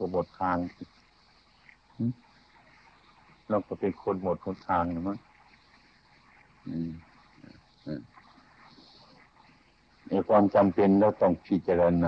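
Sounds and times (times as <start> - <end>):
tape hiss: 0.0 - 12.0.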